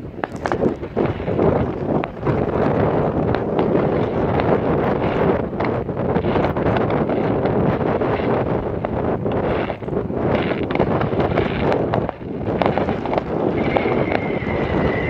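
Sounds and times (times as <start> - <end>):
distant fireworks popping: 0.0 - 15.0
wind buffeting microphone: 0.0 - 15.0.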